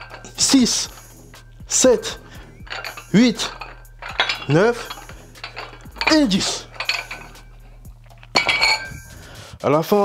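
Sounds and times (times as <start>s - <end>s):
dumbbell plates clanking: 0.0s - 9.2s.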